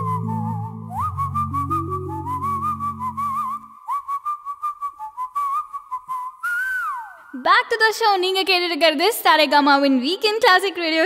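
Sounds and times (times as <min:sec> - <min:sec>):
low chord and bass notes: 0:00.0 - 0:03.2
whistled tune with vibrato: 0:00.0 - 0:07.3
woman speaking: 0:07.4 - 0:11.0.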